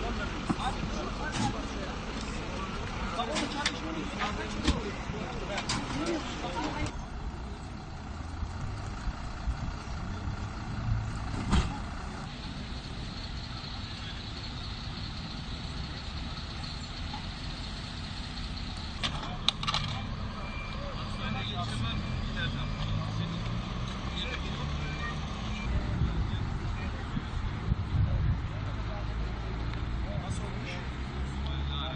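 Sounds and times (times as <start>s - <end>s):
people's voices: 0.0s - 31.9s
vehicle engines running: 0.0s - 31.9s
faint short beeps: 20.0s - 22.8s.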